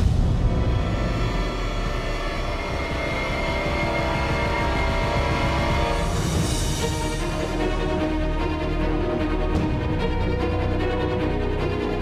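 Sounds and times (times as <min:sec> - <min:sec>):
tense dramatic music: 0:00.0 - 0:12.0.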